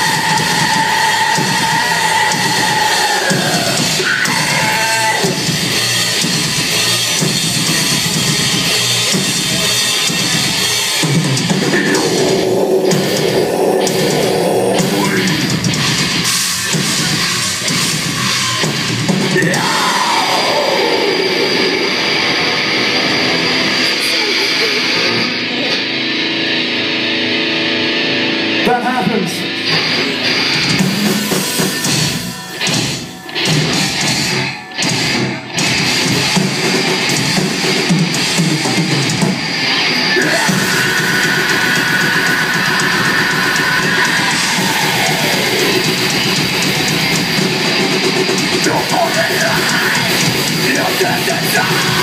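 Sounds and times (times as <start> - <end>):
distorted electric guitars: 0.0 - 52.0
drums: 0.0 - 52.0
person singing: 19.3 - 25.8, 40.0 - 46.0, 48.4 - 52.0.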